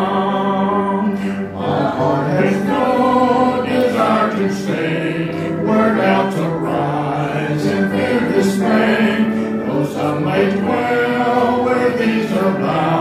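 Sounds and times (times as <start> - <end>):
keyboard accompaniment: 0.0 - 13.0
voices singing a gospel hymn: 0.0 - 13.0.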